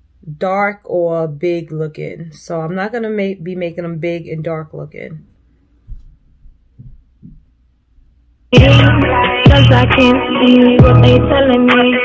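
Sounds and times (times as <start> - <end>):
soft low thumps: 5.8 - 8.9.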